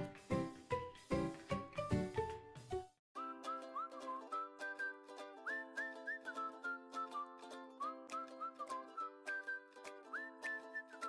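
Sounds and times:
whistled tune: 0:03.2 - 0:11.0.

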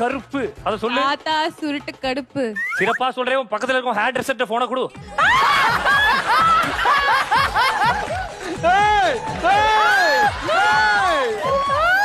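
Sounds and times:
people laughing hard: 0:05.2 - 0:11.7.

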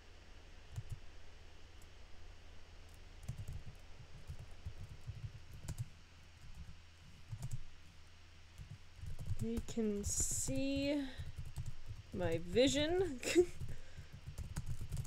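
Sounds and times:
low steady hum: 0:00.0 - 0:15.0
faint keyboard typing: 0:00.7 - 0:01.0, 0:02.9 - 0:15.0.

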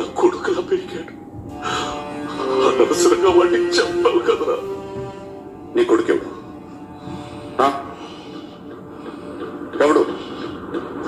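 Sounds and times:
film soundtrack background bed: 0:00.0 - 0:11.0.

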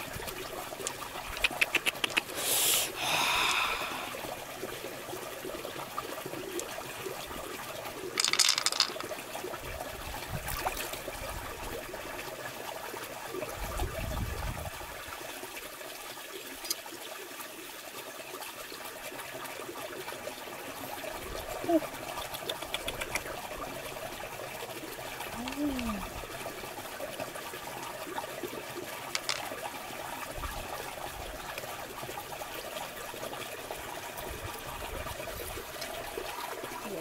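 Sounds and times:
running water: 0:00.0 - 0:37.0
rattle: 0:08.2 - 0:09.1, 0:29.1 - 0:29.5.

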